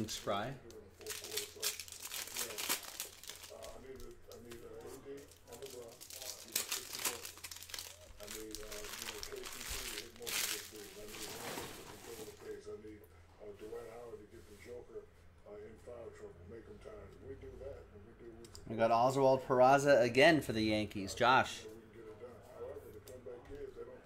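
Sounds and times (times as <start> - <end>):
trading cards being riffled: 1.0 - 11.4.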